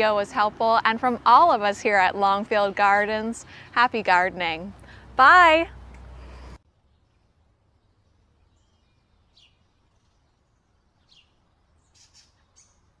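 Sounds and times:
faint bird chirps: 6.1s - 13.0s.

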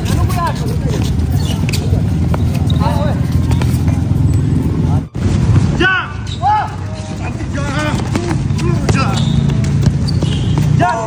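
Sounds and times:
players shouting: 4.2s - 11.0s.

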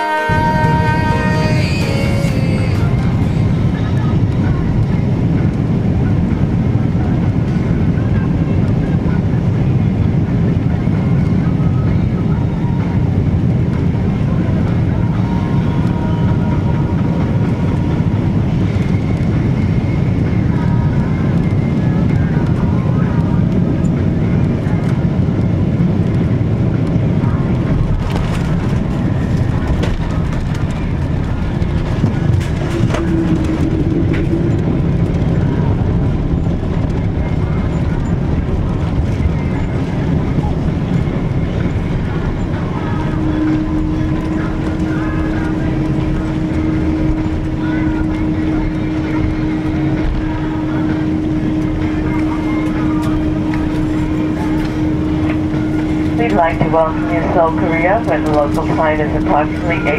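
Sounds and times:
aircraft cabin engine rumble: 0.0s - 59.9s
jet touching down on runway: 0.0s - 59.9s.

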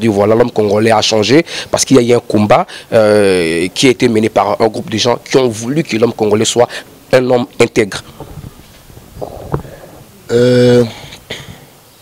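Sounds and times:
microphone handling rustle: 7.9s - 10.3s
microphone knock: 8.1s - 10.0s.

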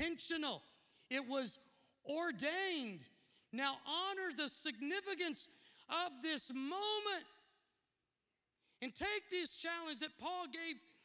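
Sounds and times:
man preaching: 0.0s - 7.5s, 8.8s - 11.0s.

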